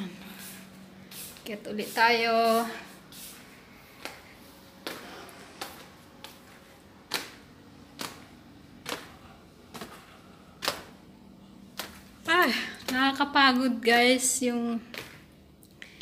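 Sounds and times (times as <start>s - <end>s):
footsteps on tiled stairs: 0.0s - 11.1s, 11.7s - 16.0s.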